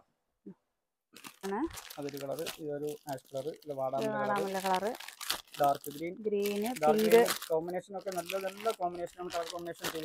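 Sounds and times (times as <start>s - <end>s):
plastic wrapper crinkling: 1.1s - 10.0s
person speaking: 1.4s - 5.0s, 5.6s - 10.0s.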